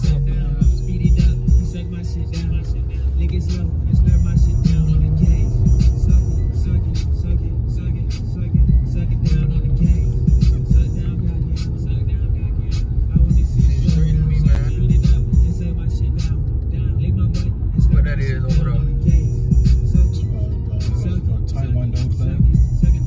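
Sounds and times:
song with heavy bass on car stereo: 0.0 - 23.0.

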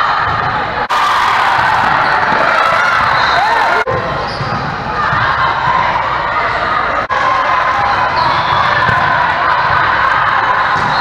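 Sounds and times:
volleyballs struck and bouncing: 8.1 - 11.0.

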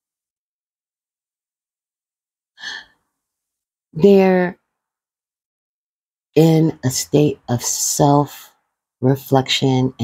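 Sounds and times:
short breath: 2.6 - 3.0
person speaking: 4.0 - 4.6.

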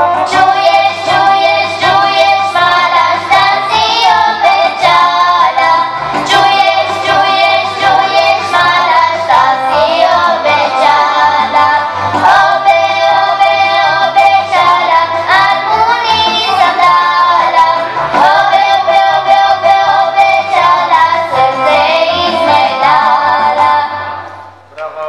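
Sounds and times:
accordion: 0.0 - 24.3
children's choir singing: 0.0 - 24.6.

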